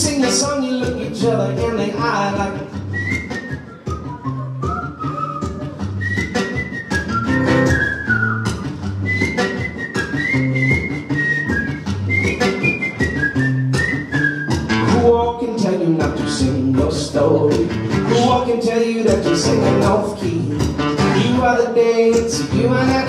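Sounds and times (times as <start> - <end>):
strummed acoustic guitar: 0.0 - 23.0
man whistling a melody: 2.7 - 15.4.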